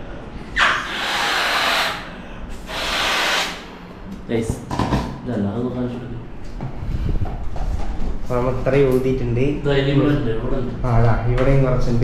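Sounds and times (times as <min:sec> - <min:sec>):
breathy blows into balloon: 0:00.8 - 0:03.7.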